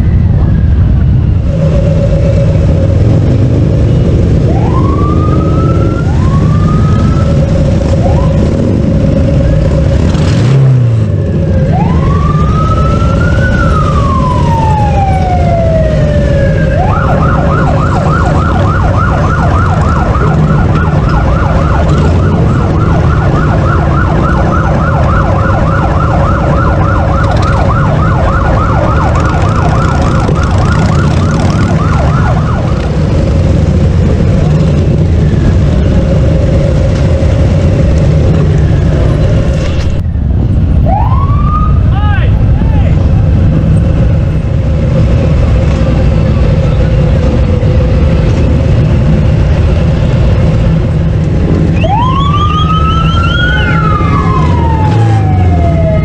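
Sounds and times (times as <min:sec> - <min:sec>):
siren wailing and yelping: 0:00.0 - 0:35.8, 0:40.8 - 0:41.9, 0:49.7 - 0:56.0
motorcycles rumbling: 0:00.0 - 0:56.0.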